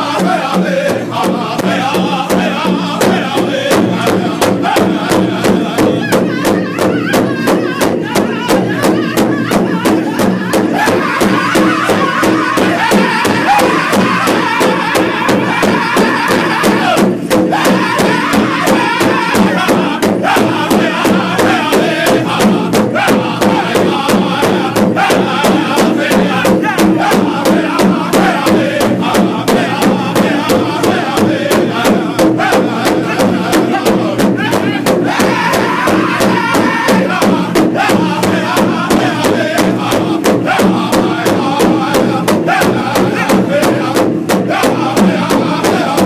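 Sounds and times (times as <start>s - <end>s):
large drum beaten with sticks: 0.0s - 46.0s
men singing in unison: 0.0s - 46.0s.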